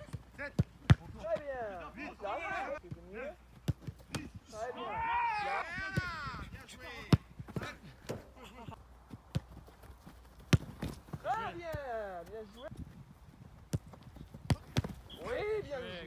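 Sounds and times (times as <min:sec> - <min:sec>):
boot kicking football: 0:09.1 - 0:11.3, 0:13.7 - 0:15.2
ball hitting gloves: 0:10.4 - 0:11.2, 0:13.7 - 0:15.0.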